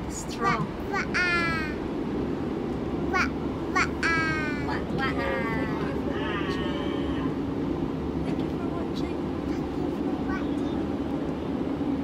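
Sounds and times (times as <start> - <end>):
train carriage rumble: 0.0 - 12.0.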